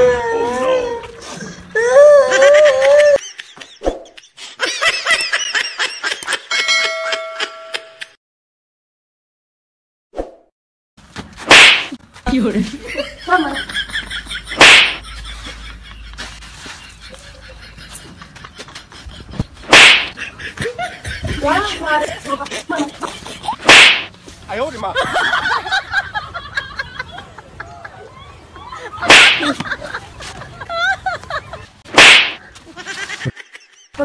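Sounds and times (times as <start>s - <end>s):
open-hand slap: 11.4s - 12.0s, 14.6s - 15.0s, 19.7s - 20.2s, 23.6s - 24.1s, 29.1s - 29.8s, 31.9s - 32.4s
whooshing punch hit: 11.5s - 12.0s, 19.7s - 20.2s, 23.6s - 24.1s, 32.0s - 32.4s.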